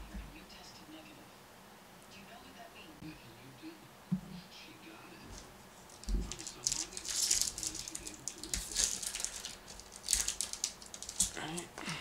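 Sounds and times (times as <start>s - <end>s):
foil wrapper crinkling and tearing: 5.9s - 11.7s.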